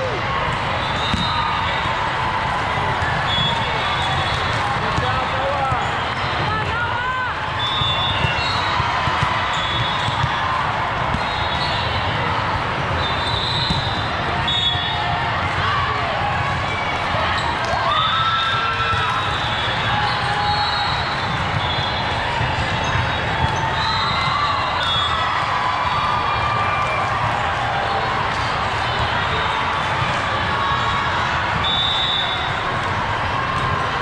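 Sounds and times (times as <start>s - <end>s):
hubbub of voices: 0.0s - 34.0s
sneakers squeaking: 0.5s - 1.8s, 3.0s - 6.6s, 7.6s - 12.1s, 12.8s - 15.0s, 16.6s - 25.2s
volleyball struck and bouncing: 1.0s - 1.4s, 7.7s - 11.8s, 13.6s - 14.2s.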